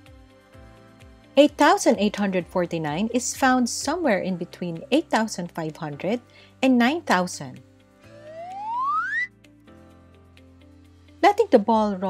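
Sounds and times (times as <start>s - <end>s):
soft background music: 0.0s - 12.0s
rising cartoon whistle: 8.1s - 9.3s.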